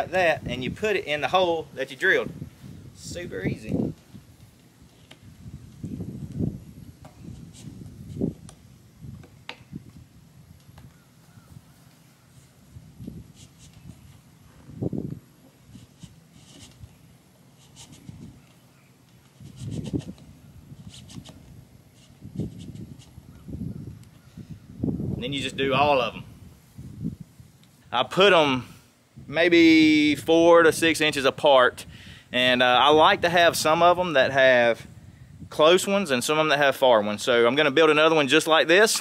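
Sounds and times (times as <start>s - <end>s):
plastic tubing rubbing and scraping: 7.0s - 8.5s, 17.6s - 18.5s, 19.2s - 23.2s.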